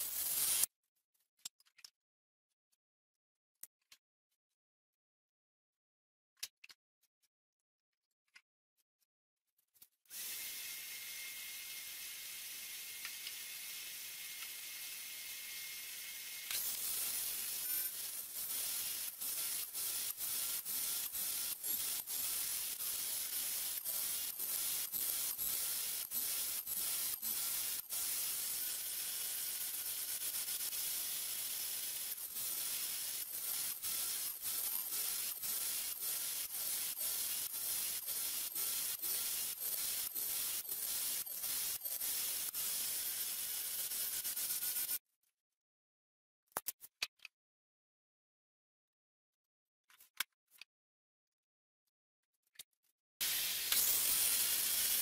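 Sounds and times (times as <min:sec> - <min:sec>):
saw blade cutting wood: 0:00.0 - 0:00.7, 0:10.1 - 0:45.0, 0:53.2 - 0:55.0
table saw motor whine: 0:10.1 - 0:45.0.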